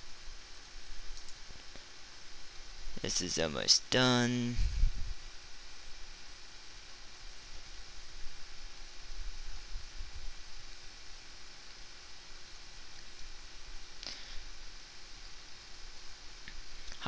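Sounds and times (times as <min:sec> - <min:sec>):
faint hum: 0:00.0 - 0:17.0
low hiss: 0:00.0 - 0:17.0.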